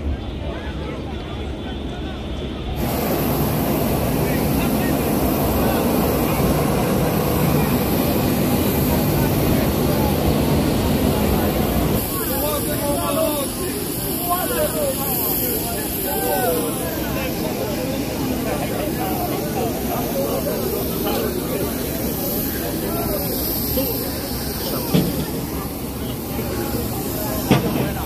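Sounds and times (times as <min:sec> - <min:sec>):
high engine whine: 0:00.0 - 0:28.0
outdoor voices: 0:00.0 - 0:28.0
jet engines rushing: 0:02.6 - 0:28.0.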